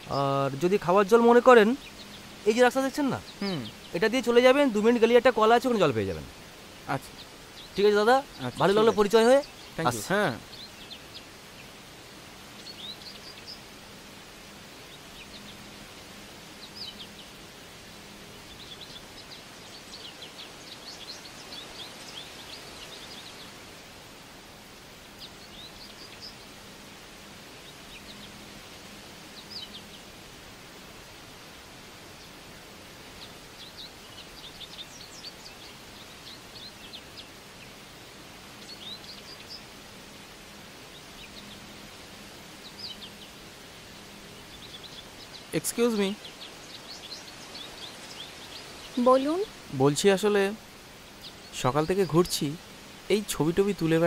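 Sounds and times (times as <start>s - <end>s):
small birds chirping: 0.0s - 54.0s
steady outdoor hiss: 0.0s - 54.0s.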